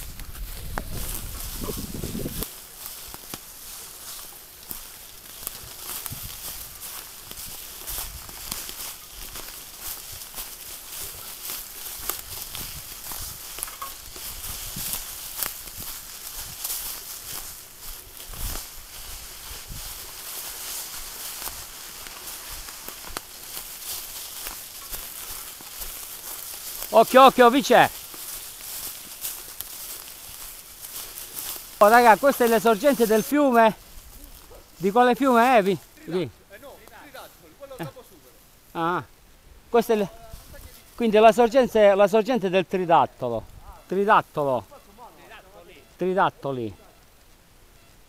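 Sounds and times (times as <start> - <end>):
leaves crackling under tyres: 0.0 - 48.0
rustling of dry leaves: 0.0 - 48.0.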